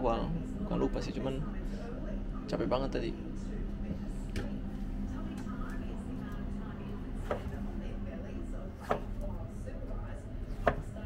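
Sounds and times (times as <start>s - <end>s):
low steady hum: 0.0s - 11.0s
knife striking plastic cutting board: 10.6s - 10.8s.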